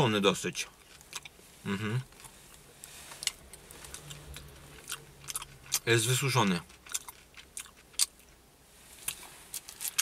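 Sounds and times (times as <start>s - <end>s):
person chewing: 0.8s - 1.4s, 3.1s - 5.9s, 6.5s - 8.4s, 9.0s - 10.0s.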